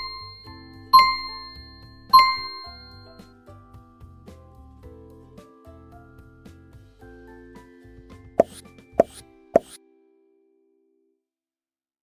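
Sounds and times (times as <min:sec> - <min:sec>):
cartoon pop sound effects: 0:08.4 - 0:09.8.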